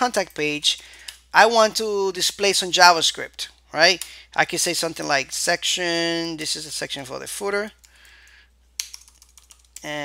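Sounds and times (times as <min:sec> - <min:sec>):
typing on computer keyboard: 0:08.8 - 0:09.9.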